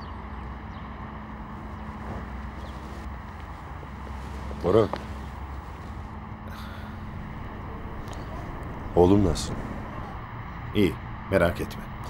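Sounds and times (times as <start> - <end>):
faint constant tone: 0.0 - 12.0
low outdoor background hum: 0.0 - 12.0.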